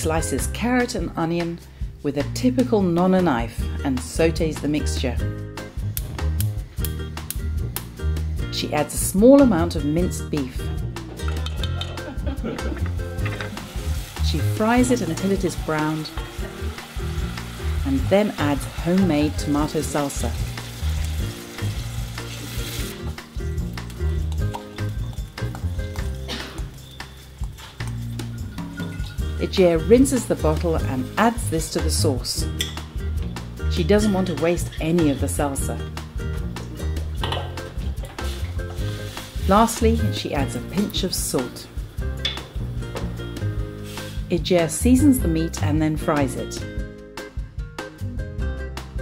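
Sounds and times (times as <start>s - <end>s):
background music: 0.0s - 49.0s
meat and vegetables sizzling in oil: 13.4s - 28.3s, 38.2s - 39.6s
saucepan and utensil clinks: 32.5s - 32.9s.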